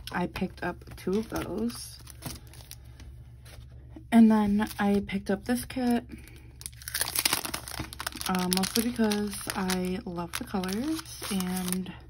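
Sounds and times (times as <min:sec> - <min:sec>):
plastic sleeve crinkling: 0:00.0 - 0:03.7, 0:05.8 - 0:12.0.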